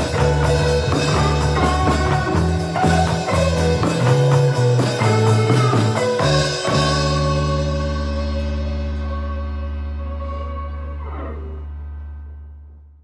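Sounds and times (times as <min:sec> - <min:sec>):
drum kit: 0:00.0 - 0:10.4
instrumental rock band music: 0:00.0 - 0:12.4
guitar chord ringing: 0:00.0 - 0:12.8.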